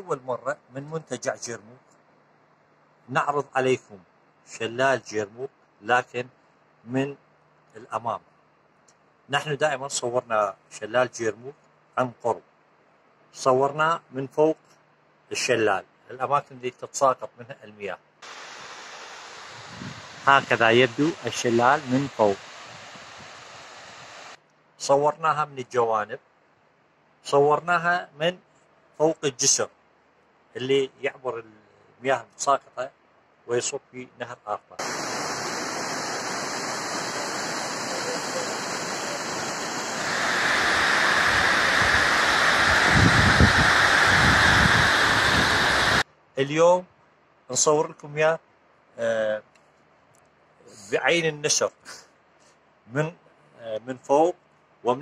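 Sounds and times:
waterfall rushing: 0:18.2 - 0:24.4, 0:34.8 - 0:46.0.

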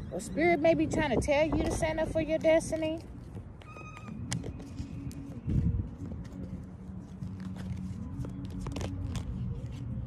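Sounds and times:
wind rumble on microphone: 0:00.0 - 0:10.0
cards being shuffled: 0:03.7 - 0:10.0.

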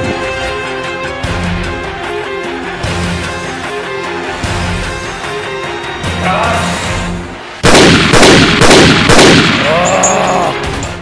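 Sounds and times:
film soundtrack music: 0:00.0 - 0:11.0
loud gunshots: 0:07.6 - 0:09.8.

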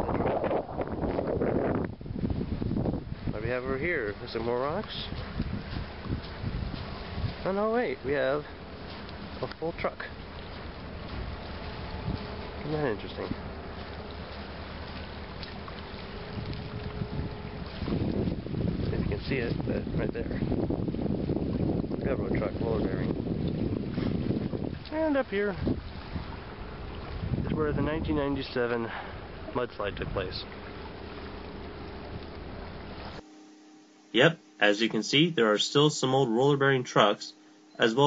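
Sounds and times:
faint steady hum: 0:00.0 - 0:22.5, 0:23.1 - 0:38.0
wind rumbling on microphone: 0:00.0 - 0:33.2.

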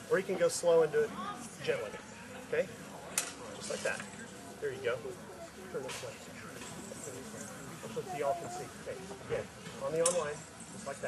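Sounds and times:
faint background talk: 0:00.0 - 0:11.0.

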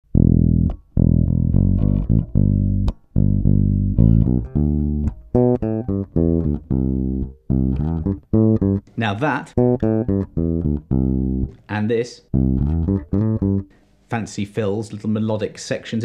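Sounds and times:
electric bass guitar fingerstyle: 0:00.0 - 0:13.8.

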